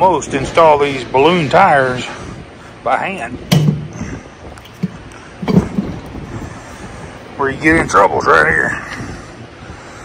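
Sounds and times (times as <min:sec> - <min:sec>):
tire knocking and rubbing on rim: 0:03.4 - 0:06.4
sharp thump: 0:03.5 - 0:03.9.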